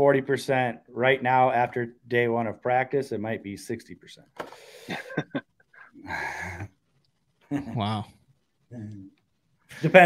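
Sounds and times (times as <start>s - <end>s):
men chuckling: 4.8s - 6.7s.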